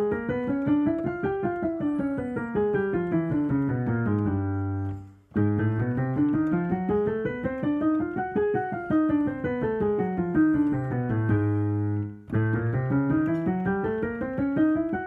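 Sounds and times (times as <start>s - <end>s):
digital piano scale runs: 0.0s - 15.0s.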